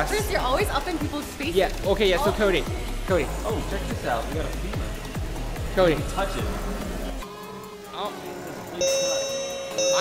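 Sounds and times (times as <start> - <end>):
electronic chime ding: 8.8 - 10.0.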